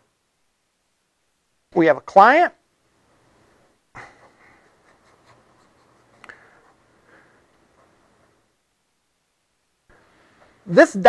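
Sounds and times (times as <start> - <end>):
pen scratching writing strokes: 4.2 - 6.8.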